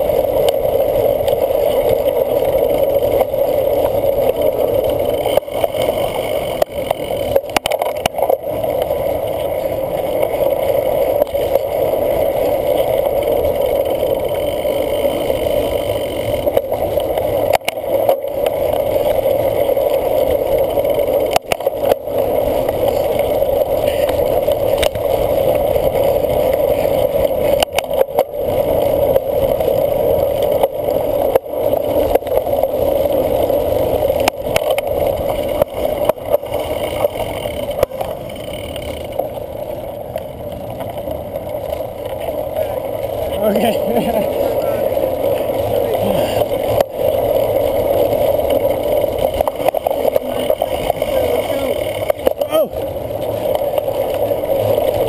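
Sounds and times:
bike knocking and rattling: 0:00.0 - 0:55.0
wind and tyres rushing: 0:00.0 - 0:55.0.

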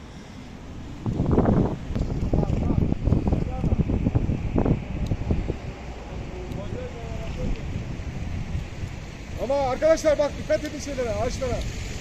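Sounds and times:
gusty wind buffeting microphone: 0:00.0 - 0:12.0.

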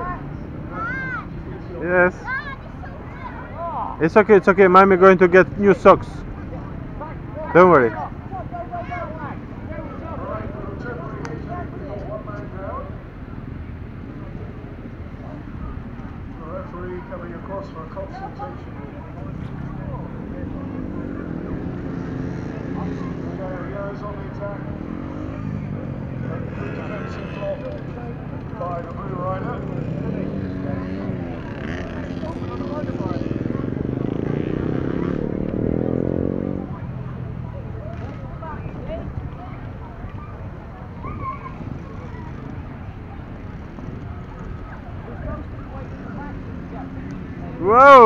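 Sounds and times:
distant children's voices: 0:00.0 - 0:04.0, 0:36.0 - 0:47.6
motorcycle engines revving: 0:00.0 - 0:48.0.

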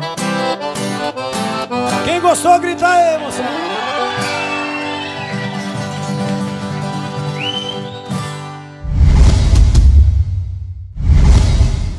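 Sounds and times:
accordion and acoustic guitars chord: 0:00.0 - 0:08.8
sharp rising whistle: 0:03.8 - 0:05.7, 0:07.4 - 0:08.3
deep whoosh: 0:08.8 - 0:11.9.

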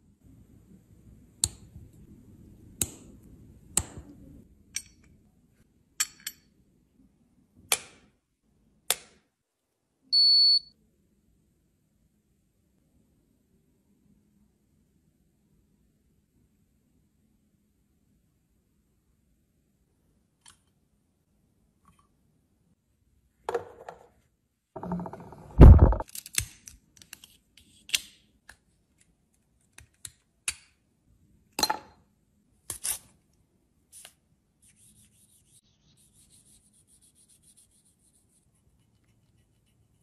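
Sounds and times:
louder knock: 0:24.8 - 0:26.0.

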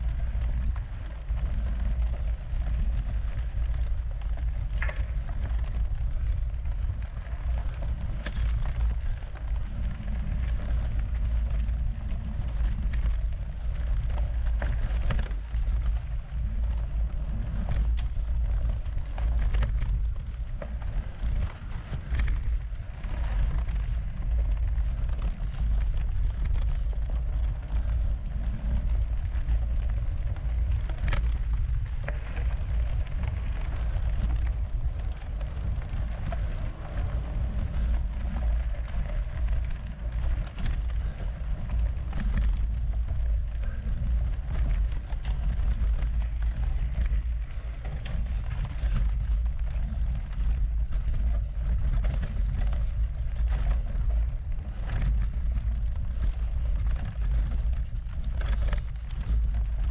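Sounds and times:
bike clicks and rattles: 0:00.0 - 0:59.9
tyre and wind rumble: 0:00.0 - 0:59.9.

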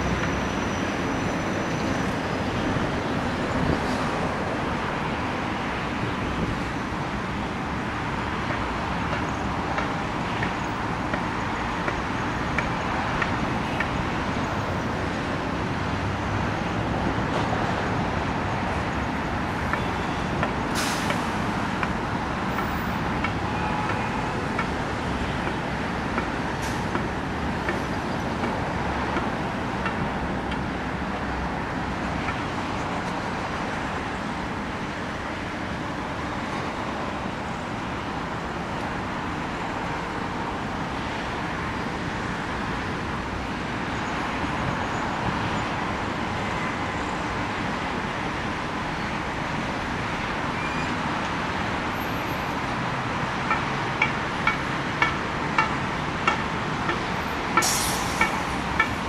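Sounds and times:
distant city traffic hum: 0:00.0 - 0:59.0.

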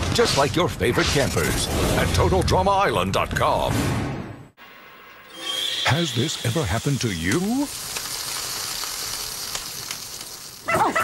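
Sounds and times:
cartoon sizzle: 0:05.2 - 0:11.0.

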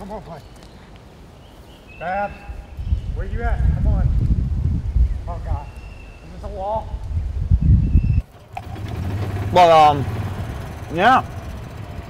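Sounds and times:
low rumbling: 0:06.1 - 0:12.0
golf cart engine running: 0:08.2 - 0:12.0.

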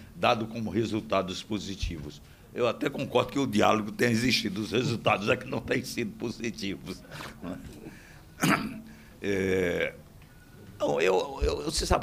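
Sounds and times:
man clearing his throat: 0:08.4 - 0:09.0.

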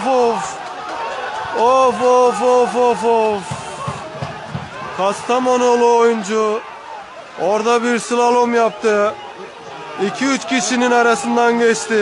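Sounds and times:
outdoor background noise: 0:00.0 - 0:12.0
dull low thumps: 0:03.4 - 0:05.2.

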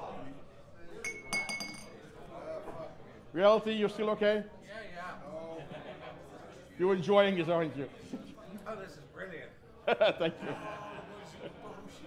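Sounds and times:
glassware clinking: 0:01.0 - 0:02.1.

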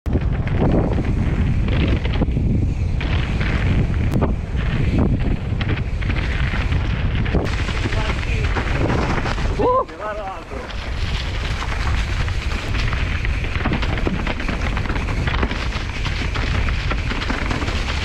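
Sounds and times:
bike rattling over rough ground: 0:00.1 - 0:18.0
bike tyre rumble: 0:00.1 - 0:18.0
wind buffeting microphone: 0:00.1 - 0:18.0.

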